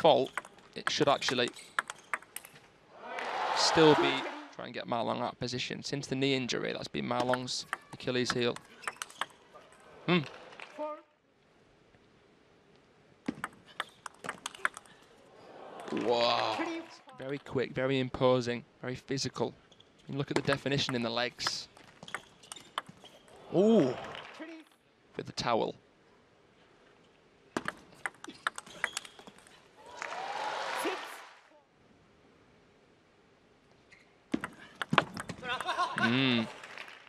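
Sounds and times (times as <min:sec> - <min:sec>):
table tennis ball clicking: 0:01.3 - 0:02.5, 0:07.2 - 0:09.4, 0:13.3 - 0:14.9, 0:22.0 - 0:23.0, 0:27.6 - 0:29.3, 0:34.4 - 0:35.7.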